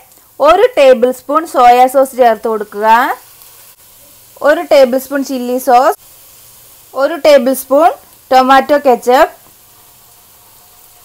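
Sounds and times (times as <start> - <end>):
onions sizzling in a pan: 0.0 - 11.0.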